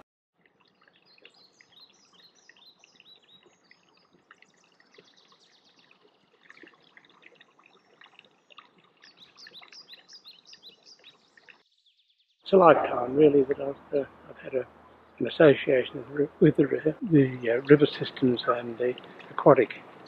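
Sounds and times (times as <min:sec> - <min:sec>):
small birds chirping: 0:00.6 - 0:20.0.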